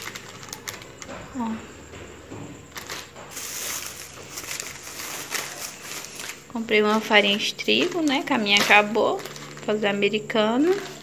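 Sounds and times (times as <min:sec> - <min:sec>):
plastic packaging crinkling: 0:00.0 - 0:01.1, 0:02.7 - 0:11.0.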